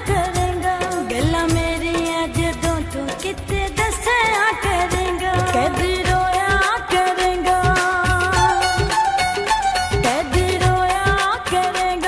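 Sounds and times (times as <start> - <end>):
drum beat and bass: 0.0 - 12.0.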